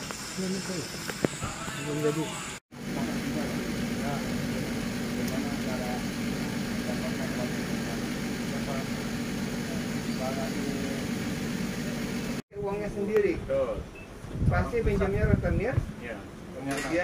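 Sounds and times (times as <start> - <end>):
low machine hum: 2.8 - 12.4.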